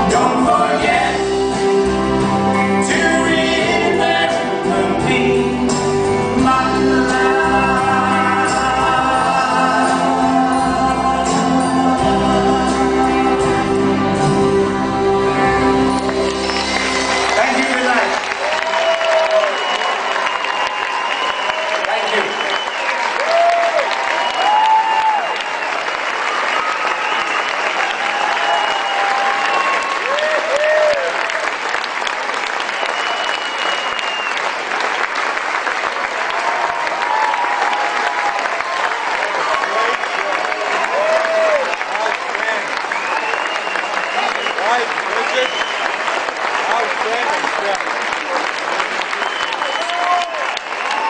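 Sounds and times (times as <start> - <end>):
audience clapping: 15.6 - 51.0
shouted whoops: 18.3 - 31.5, 36.3 - 42.0, 49.1 - 51.0
long whistles: 19.2 - 23.0, 32.7 - 34.4, 42.9 - 46.1, 49.2 - 50.1.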